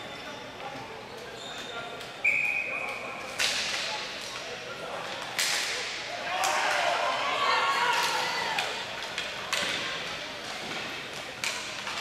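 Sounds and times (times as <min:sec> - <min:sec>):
referee's whistle: 0:02.2 - 0:03.0.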